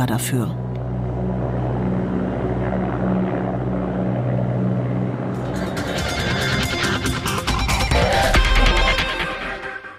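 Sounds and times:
helicopter rotor pulsing: 0:00.0 - 0:09.6
music: 0:00.8 - 0:09.9.

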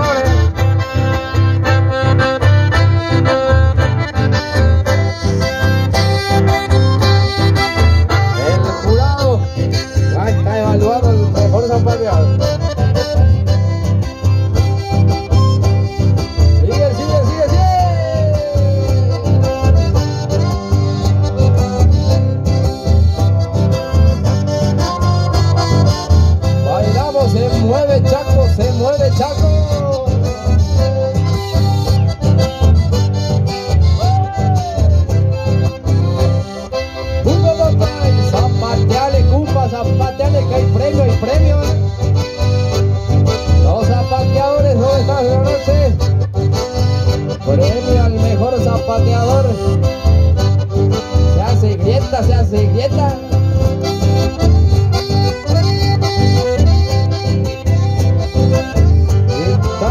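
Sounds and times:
accordion melody: 0:00.0 - 0:59.9
acoustic guitar: 0:00.0 - 0:59.9
steady bass: 0:00.0 - 0:59.9.

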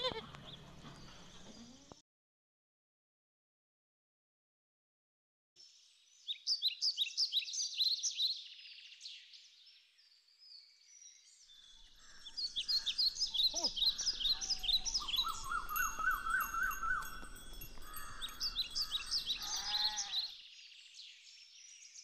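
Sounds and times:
birds chirping chorus: 0:00.0 - 0:02.0, 0:05.6 - 0:22.0.

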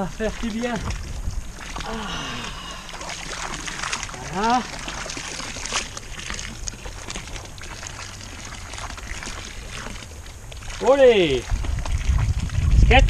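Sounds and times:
cloth dripping water: 0:00.0 - 0:13.0
water splashing in fountain trough: 0:00.0 - 0:13.0.

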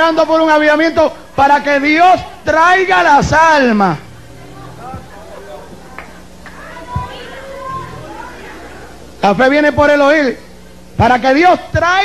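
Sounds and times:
low electrical hum: 0:00.0 - 0:12.0
children chattering: 0:04.0 - 0:09.2
faint background voices: 0:04.0 - 0:09.2.

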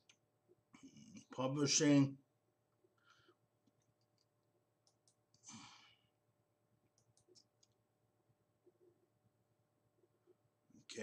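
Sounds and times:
computer mouse clicks: 0:03.6 - 0:05.5, 0:06.9 - 0:07.8.

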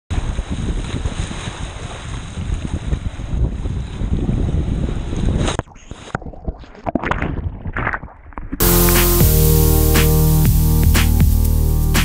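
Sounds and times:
wind buffeting microphone: 0:00.1 - 0:06.6
rushing water: 0:08.6 - 0:12.0.

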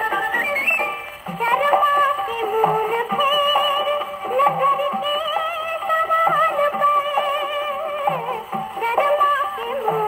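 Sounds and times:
old film song on gramophone: 0:00.0 - 0:10.0.

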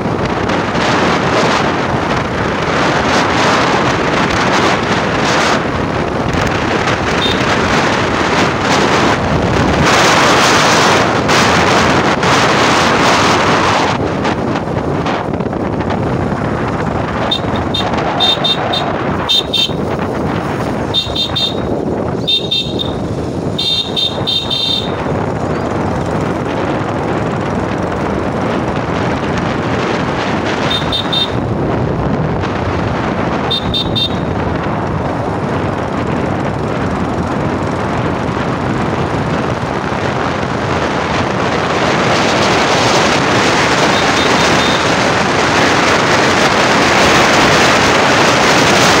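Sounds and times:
motorcycle engine: 0:00.0 - 0:49.0
wind on microphone: 0:00.0 - 0:49.0
short high horn beeps: 0:17.3 - 0:19.8, 0:20.9 - 0:23.0, 0:23.6 - 0:25.0.

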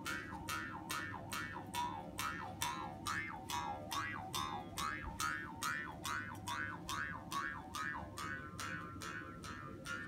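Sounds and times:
mouth harp twanging: 0:00.0 - 0:10.0.

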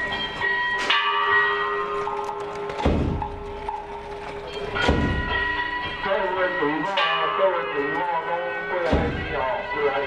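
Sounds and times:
loud percussion strike: 0:02.8 - 0:03.5.

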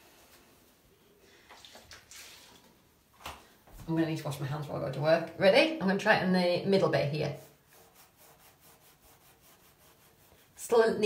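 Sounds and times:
liquid trickling onto cloth: 0:01.3 - 0:03.4.

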